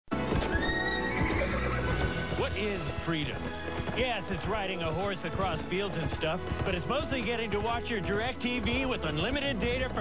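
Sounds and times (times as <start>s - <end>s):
background music: 0.1s - 10.0s
horse galloping: 0.1s - 10.0s
horse whinnying: 0.2s - 7.0s.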